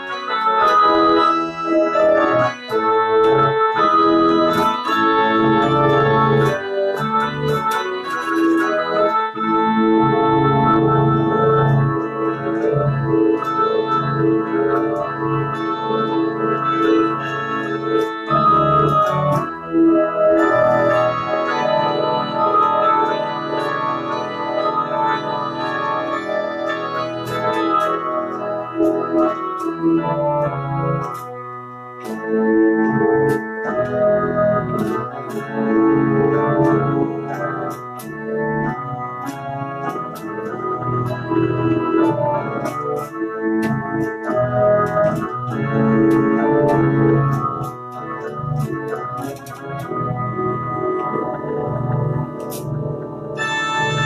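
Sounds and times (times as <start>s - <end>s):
pipe organ playing chords: 0.0s - 54.0s.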